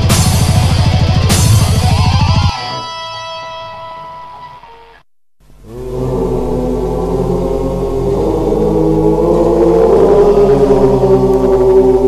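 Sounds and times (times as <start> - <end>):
electric guitar chord ringing: 0.0 - 5.0
heavy rock music: 0.0 - 5.0
sustained sound: 5.5 - 12.0.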